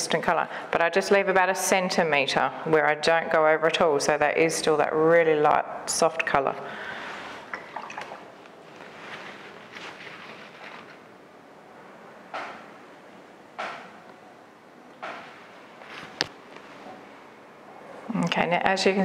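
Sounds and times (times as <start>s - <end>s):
faint room hiss: 0.0s - 19.0s
brush swishes: 7.2s - 11.0s.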